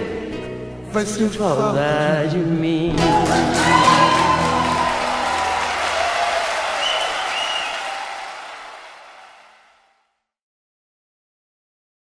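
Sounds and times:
live band playing: 0:02.9 - 0:08.8
audience applause and cheering: 0:02.9 - 0:09.8.

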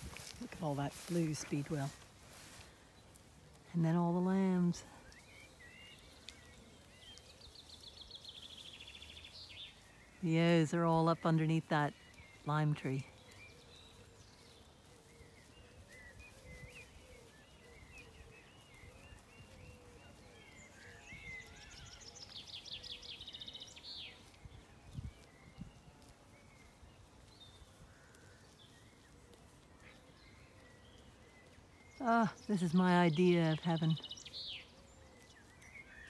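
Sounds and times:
birds chirping: 0:00.0 - 0:36.0.

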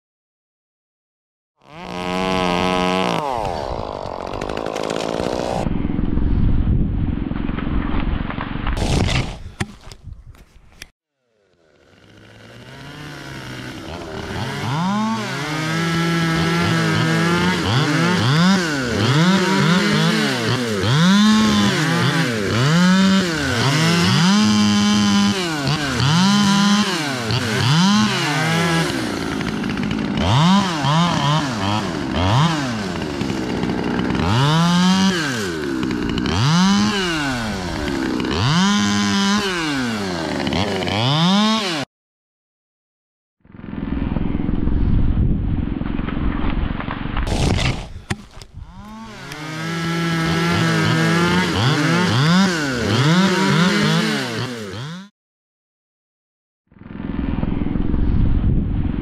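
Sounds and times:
chainsaw revving and cutting: 0:01.6 - 0:05.7, 0:11.2 - 0:41.9, 0:47.3 - 0:55.1
low rumble: 0:05.6 - 0:08.7.

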